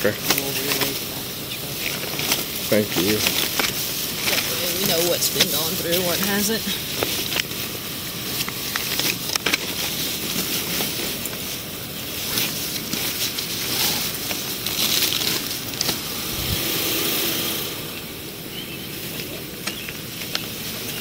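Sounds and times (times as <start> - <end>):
plastic bags rustling: 0.0 - 21.0.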